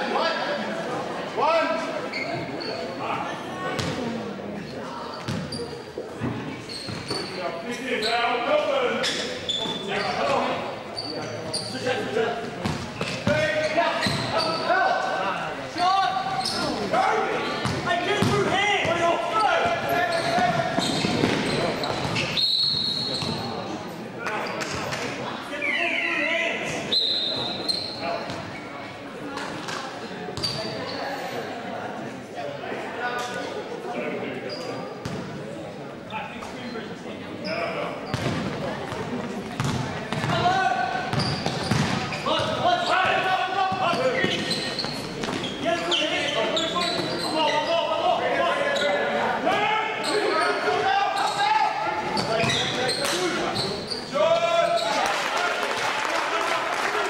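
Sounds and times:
sneakers squeaking: 0:02.0 - 0:31.5, 0:34.4 - 0:35.4, 0:36.1 - 0:49.2, 0:49.9 - 0:55.2
basketball bouncing on court: 0:05.3 - 0:05.6, 0:38.1 - 0:40.4, 0:41.1 - 0:42.6.

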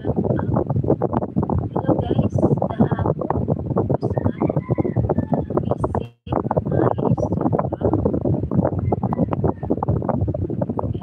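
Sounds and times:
woman talking: 0:00.0 - 0:00.6, 0:01.7 - 0:03.1, 0:04.0 - 0:04.6, 0:05.4 - 0:08.0.

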